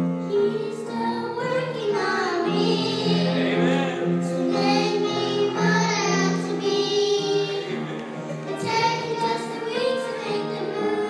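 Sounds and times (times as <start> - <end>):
children singing into a microphone: 0.3 - 11.0.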